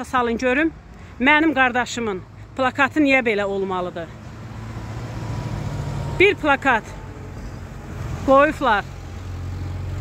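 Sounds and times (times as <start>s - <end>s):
vehicle engine hum: 0.0s - 10.0s.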